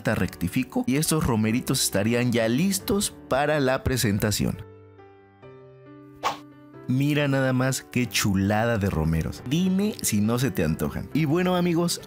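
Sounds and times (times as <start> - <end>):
background music with held notes: 0.0 - 12.0
short plop: 6.2 - 6.5.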